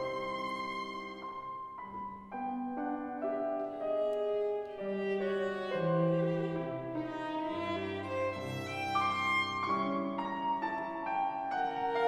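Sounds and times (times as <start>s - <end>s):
piano playing: 0.0s - 12.0s.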